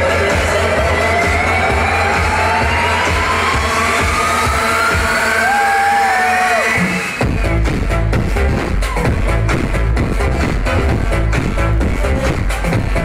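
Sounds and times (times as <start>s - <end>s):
deep steady bass: 0.0s - 13.0s
synth tone rising in pitch: 0.6s - 5.7s.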